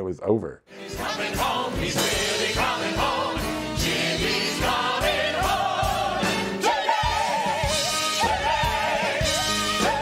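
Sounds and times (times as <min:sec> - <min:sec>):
ensemble singing in chorus: 0:00.8 - 0:10.0.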